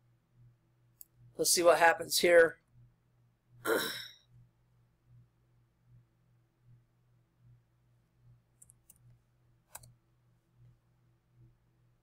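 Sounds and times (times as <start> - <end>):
faint low hum: 0.0 - 12.0
woman sighing: 3.7 - 4.1.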